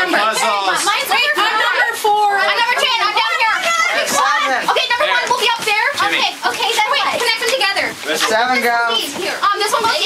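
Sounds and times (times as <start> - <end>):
teenagers talking over one another: 0.0 - 10.0.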